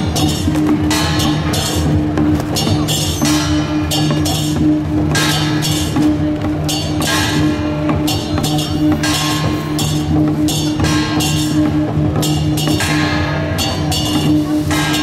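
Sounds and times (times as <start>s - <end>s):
hand drum beaten with stick: 0.0s - 15.0s.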